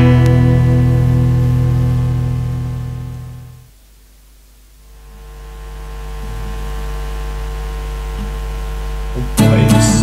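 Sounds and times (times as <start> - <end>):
guitar chord held: 0.0 - 3.7, 5.9 - 10.0.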